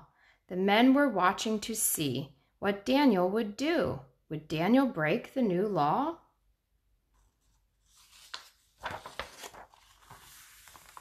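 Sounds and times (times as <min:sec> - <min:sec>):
woman reading aloud: 0:00.0 - 0:06.4
book page rustling: 0:07.1 - 0:11.0.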